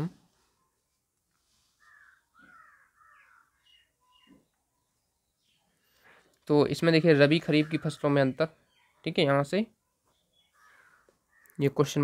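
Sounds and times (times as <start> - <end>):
distant bird calls: 1.4 - 12.0.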